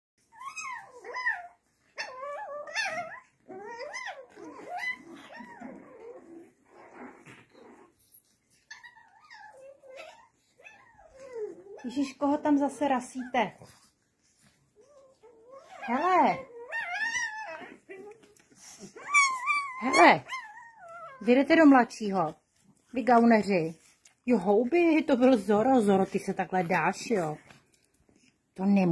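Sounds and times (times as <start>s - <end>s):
puppies whining yelps: 0.2s - 12.5s, 13.1s - 21.5s.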